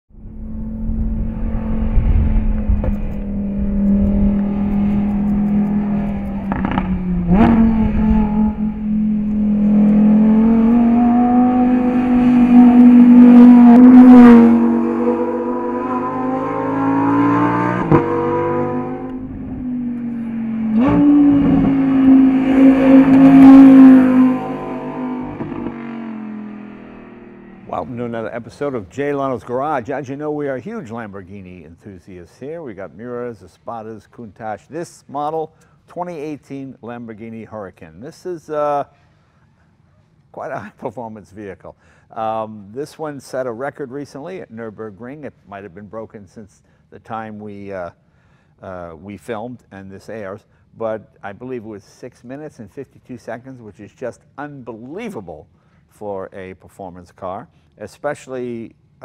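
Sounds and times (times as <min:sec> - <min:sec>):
sports car engine revving: 0:00.2 - 0:28.3
sharp exhaust cracks: 0:02.0 - 0:14.8.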